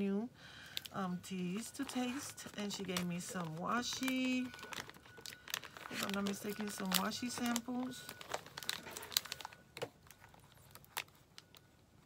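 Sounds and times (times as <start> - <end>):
plastic sleeves crinkling: 0.6 - 12.0.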